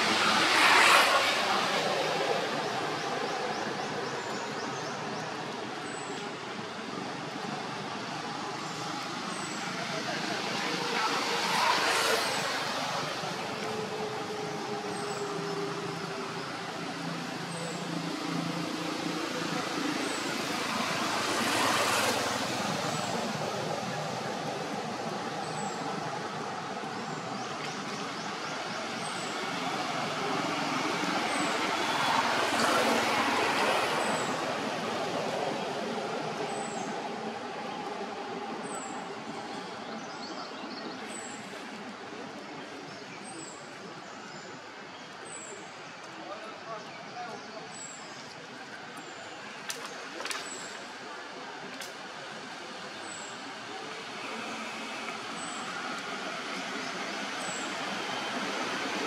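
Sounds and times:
passing road traffic: 0.0s - 59.0s.

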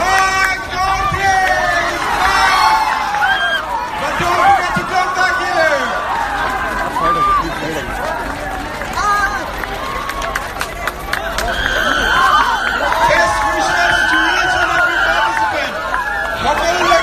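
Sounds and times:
crowd cheering and shouting: 0.0s - 17.0s
crowd din: 0.0s - 17.0s.

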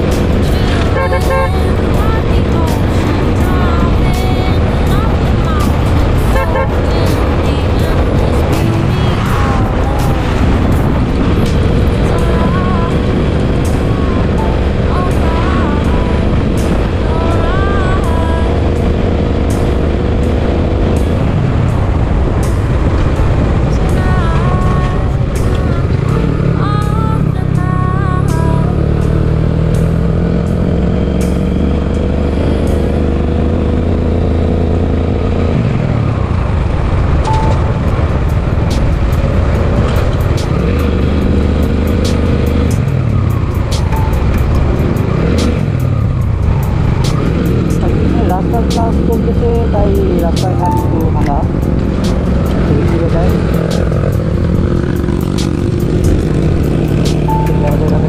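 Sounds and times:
background music: 0.0s - 58.0s
motorcycle cruising rumble: 0.0s - 58.0s.

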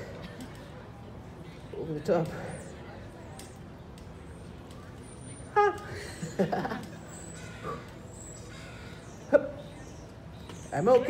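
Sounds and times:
quiet street ambience: 0.0s - 11.0s.

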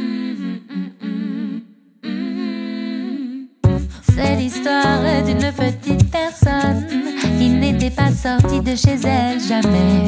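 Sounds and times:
band with deep bass and percussion: 3.6s - 9.9s.

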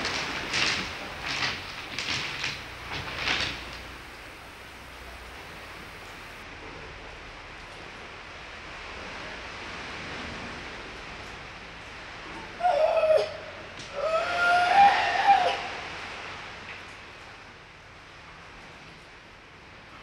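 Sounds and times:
steady hiss: 0.0s - 6.4s.

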